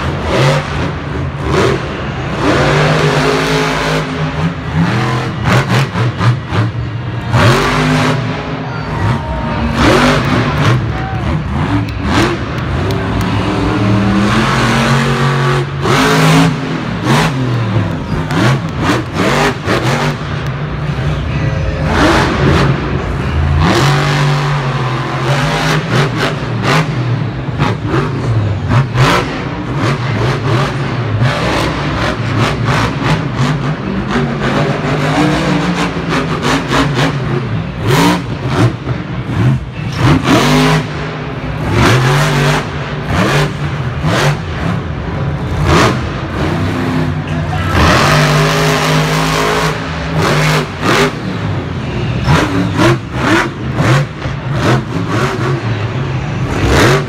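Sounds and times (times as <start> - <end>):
truck engine revving: 0.0 - 57.0.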